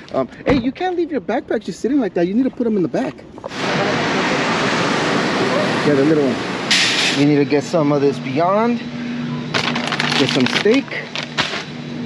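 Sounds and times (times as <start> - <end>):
steady rushing air noise: 0.0 - 9.5.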